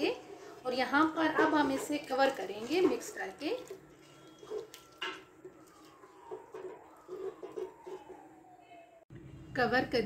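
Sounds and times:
wooden spoon stirring in pot: 0.0s - 8.6s
spoon scraping and knocking pot: 1.2s - 8.2s.

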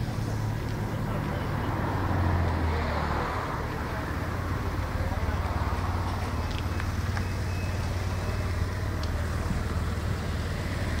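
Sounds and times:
motorcycle engine idling: 3.8s - 11.0s.

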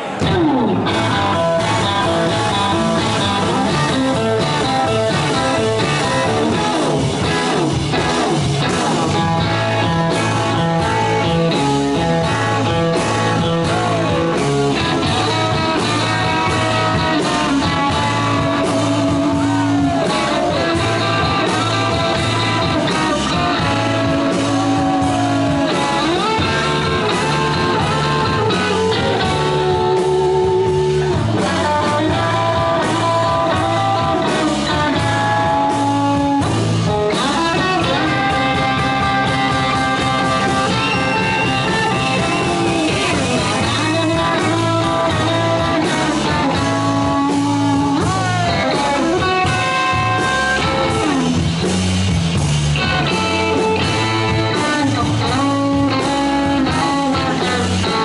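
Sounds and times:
electric guitar bending notes: 0.0s - 58.0s
rock band playing: 0.0s - 58.0s.

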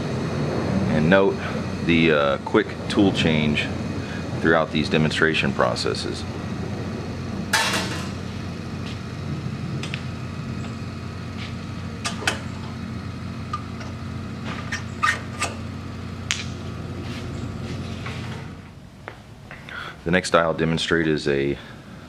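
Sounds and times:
low steady hum: 0.0s - 22.0s.

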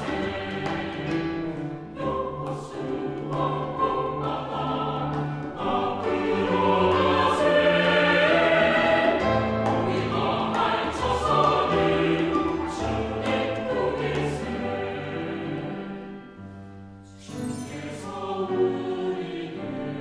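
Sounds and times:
mixed choir singing: 0.0s - 20.0s
piano accompaniment: 0.0s - 20.0s.

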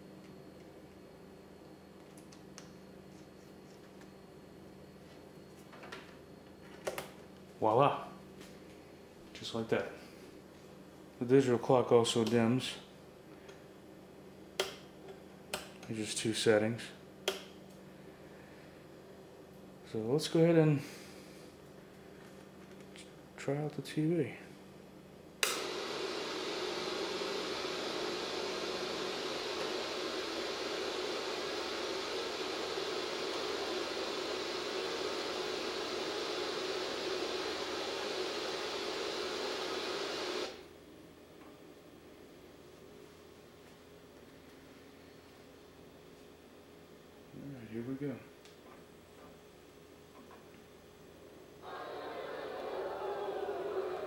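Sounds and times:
faint steady hum: 0.0s - 54.0s
television static hiss: 25.4s - 54.0s.

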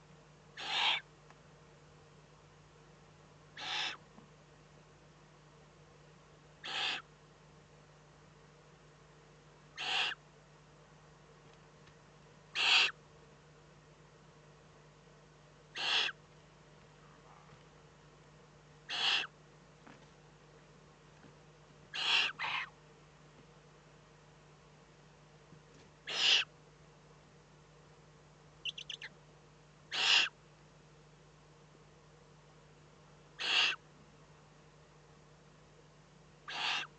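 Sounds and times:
steady low hum: 0.0s - 36.9s
owl chick rasping hisses: 0.6s - 1.1s, 3.6s - 4.0s, 6.6s - 7.1s, 9.8s - 10.2s, 12.5s - 13.0s, 15.7s - 16.2s, 18.9s - 19.4s, 21.9s - 22.8s, 26.0s - 26.5s, 29.9s - 30.4s, 33.4s - 33.8s, 36.4s - 36.9s.

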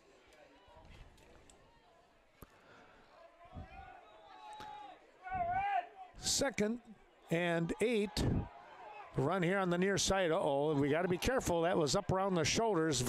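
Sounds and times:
man's voice: 5.3s - 8.5s, 9.2s - 13.0s.

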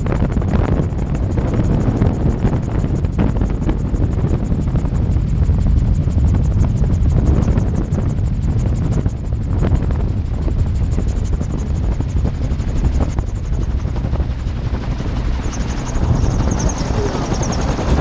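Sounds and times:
gyroplane engine and rotor drone: 0.0s - 18.0s.

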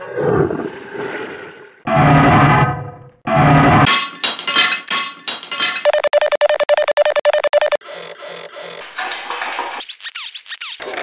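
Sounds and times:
low pulses: 0.0s - 3.9s.

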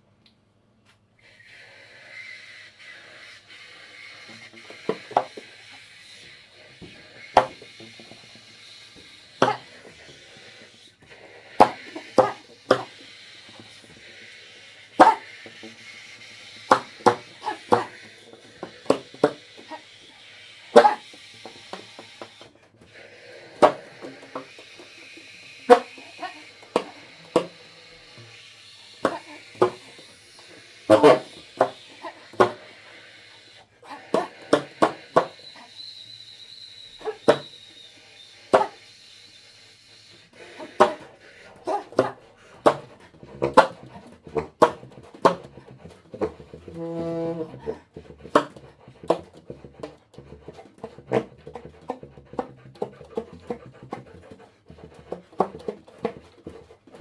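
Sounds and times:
saxophone airy hiss: 1.2s - 42.8s.

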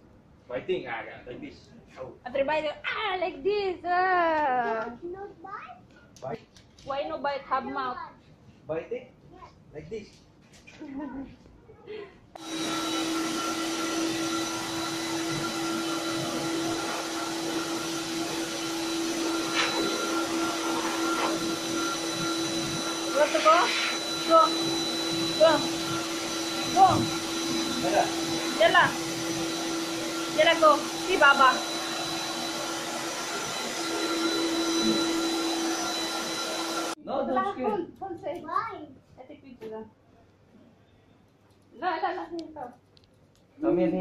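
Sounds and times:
blow dryer motor whine: 12.4s - 37.0s.

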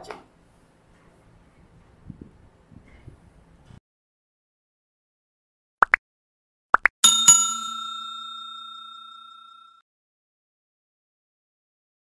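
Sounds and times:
bright bell dings: 7.0s - 9.8s
long bell ring: 7.0s - 9.8s.

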